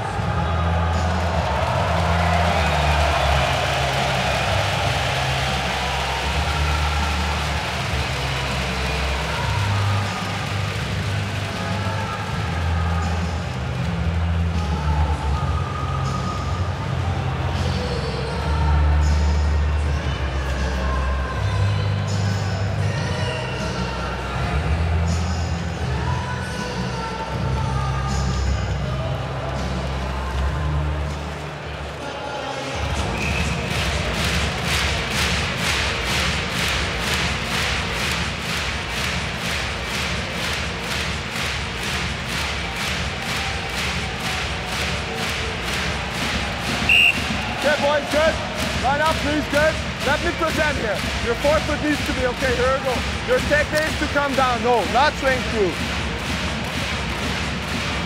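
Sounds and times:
crowd noise: 0.0 - 58.0
fast beat of sharp strokes: 33.2 - 58.0.

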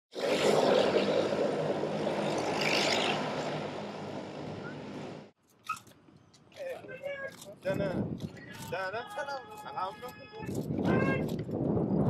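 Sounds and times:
aircraft engine roar: 0.1 - 5.3.

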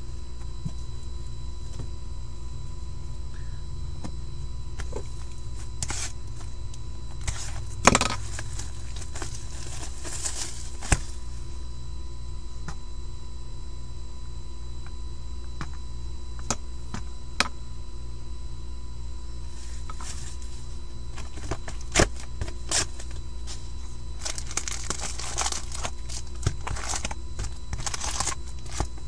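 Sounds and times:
low electrical hum: 0.0 - 29.0
cardboard rustling: 4.7 - 11.5, 19.4 - 29.0.

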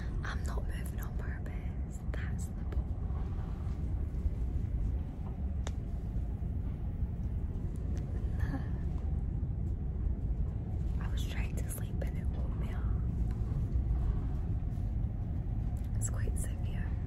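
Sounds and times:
woman whispering: 0.0 - 3.6, 8.2 - 9.0, 11.0 - 13.3, 15.9 - 17.0
ferry engine rumble: 0.0 - 17.0.

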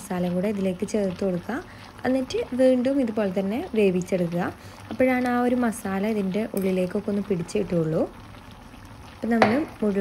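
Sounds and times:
food sizzling in oil: 0.0 - 10.0
woman speaking: 9.2 - 10.0.

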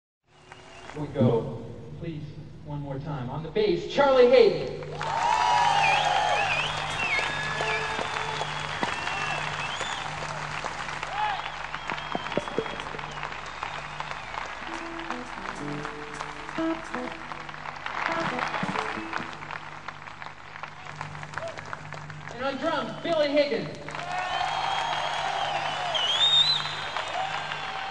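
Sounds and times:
audience applauding: 0.4 - 1.0, 4.8 - 27.9
shouts: 5.0 - 9.6, 11.1 - 11.6, 24.0 - 26.1
short instrument notes: 14.6 - 19.5.

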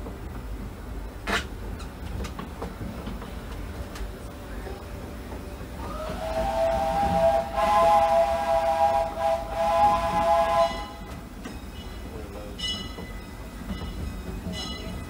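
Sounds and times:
train rolling: 0.0 - 15.0
steam hissing: 5.6 - 12.0
steam locomotive whistle: 5.8 - 11.2.

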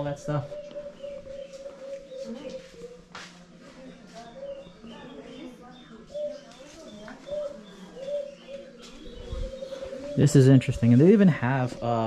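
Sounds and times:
dove cooing: 0.0 - 12.0.

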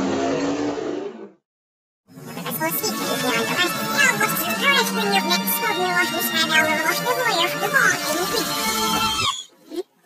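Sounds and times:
advert music and voices: 2.1 - 9.8.

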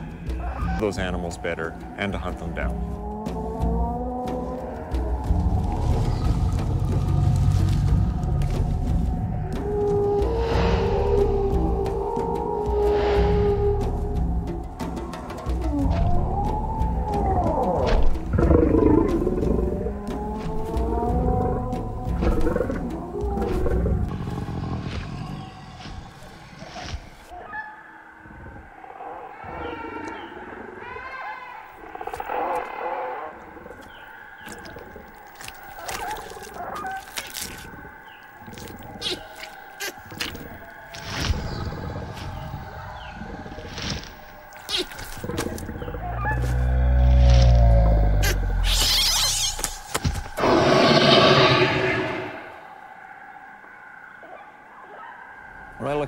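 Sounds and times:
background music: 0.0 - 29.2
dinosaur calls and growls: 0.0 - 56.0
deep rumbling growl: 2.8 - 25.8, 45.2 - 48.7.

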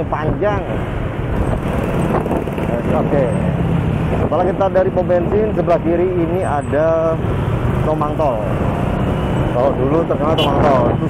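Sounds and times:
wind rushing over microphone: 0.0 - 5.2, 8.5 - 11.0
road noise: 0.0 - 11.0.

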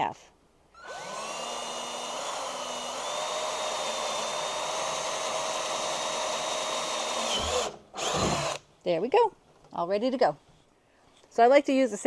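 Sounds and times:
cordless drill motor whine: 0.8 - 8.6.

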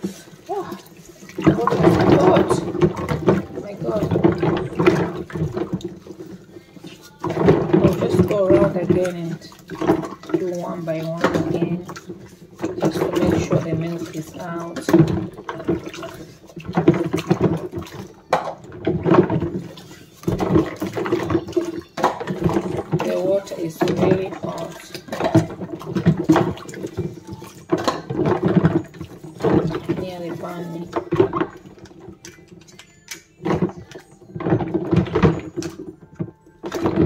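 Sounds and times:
bottle brush scrubbing: 0.0 - 18.2, 18.9 - 32.1
water sloshing in plastic basin: 0.0 - 37.0
person's voice: 0.5 - 5.1, 7.3 - 9.6, 10.3 - 12.0, 12.8 - 15.1, 22.9 - 25.0, 29.5 - 31.0.

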